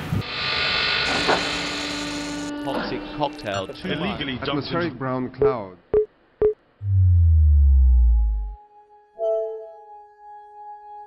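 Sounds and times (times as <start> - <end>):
electronic power-down hum: 6.8 - 8.6.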